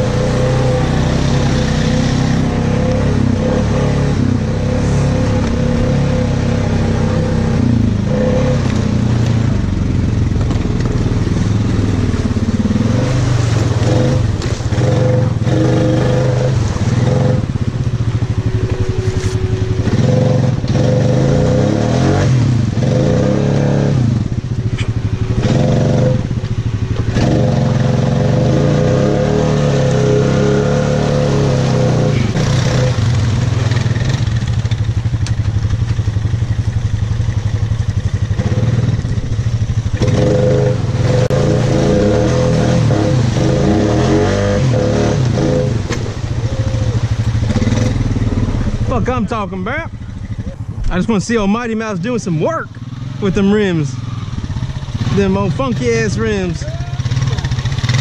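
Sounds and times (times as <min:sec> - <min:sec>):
atv engine revving: 0:00.0 - 0:58.0.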